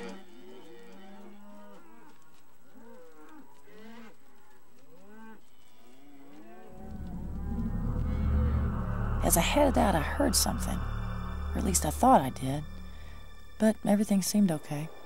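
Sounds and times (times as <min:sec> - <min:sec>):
cows mooing: 0:06.2 - 0:11.4
low rumble: 0:06.8 - 0:14.0.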